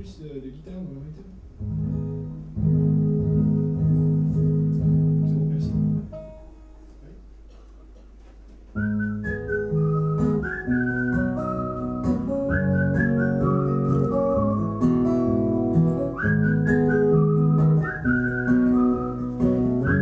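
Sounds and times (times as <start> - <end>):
acoustic guitar chords: 0.8 - 7.6, 8.7 - 20.0
whistled melody: 8.8 - 20.0.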